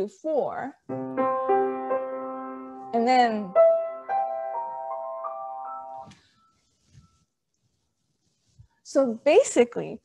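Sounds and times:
piano notes ringing: 0:00.9 - 0:07.2.

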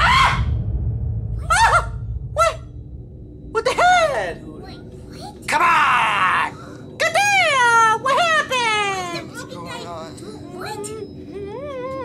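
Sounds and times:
low steady rumble: 0:00.0 - 0:09.5.

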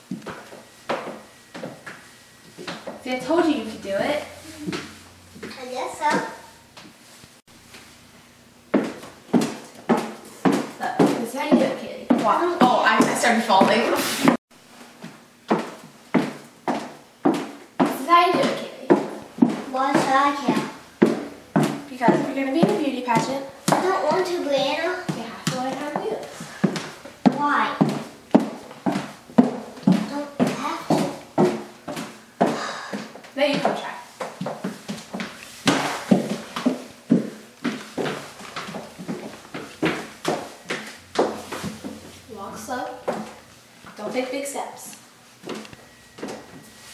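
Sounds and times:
high heels on hardwood floor: 0:00.0 - 0:03.6, 0:08.7 - 0:14.4, 0:15.0 - 0:44.2, 0:45.4 - 0:46.6.

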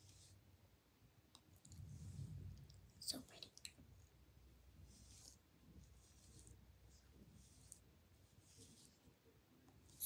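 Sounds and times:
soft low rumble: 0:01.6 - 0:05.0.

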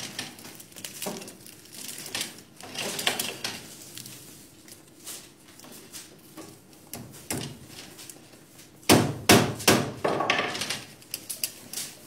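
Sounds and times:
sharp knocks like hammer blows: 0:08.9 - 0:10.0.

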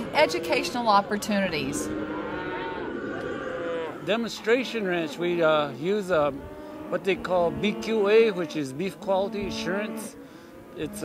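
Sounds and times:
calf bawling: 0:00.0 - 0:11.0.

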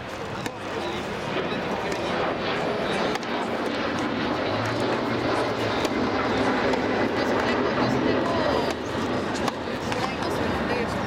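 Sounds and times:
jet airliner passing overhead: 0:00.0 - 0:11.0
tennis ball being struck: 0:09.4 - 0:10.2.

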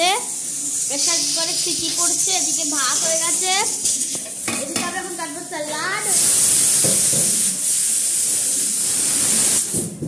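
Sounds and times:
high-pitched hiss: 0:00.0 - 0:10.0.

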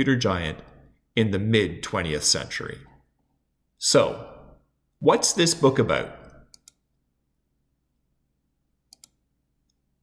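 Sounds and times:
computer mouse clicking: 0:06.5 - 0:06.8, 0:08.9 - 0:09.8.

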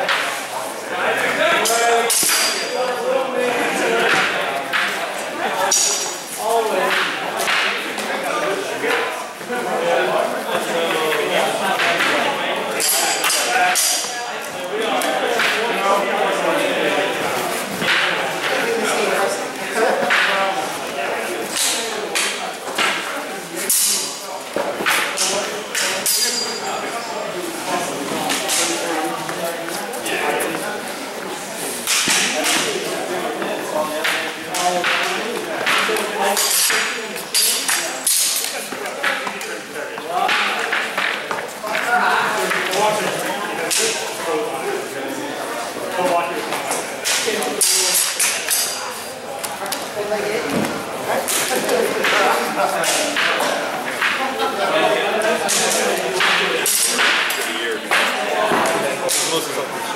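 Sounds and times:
murmur of voices: 0:00.0 - 0:59.9.

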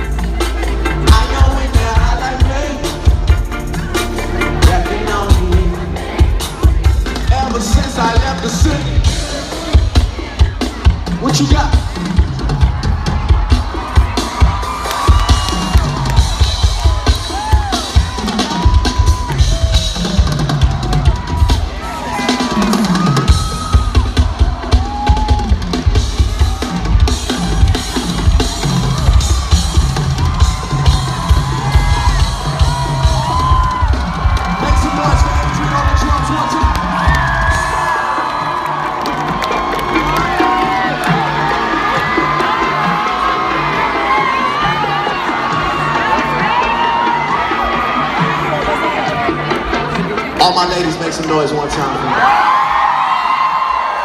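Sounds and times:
live drum kit playing fast: 0:00.0 - 0:52.4
crowd shouting and cheering: 0:00.0 - 0:54.0.

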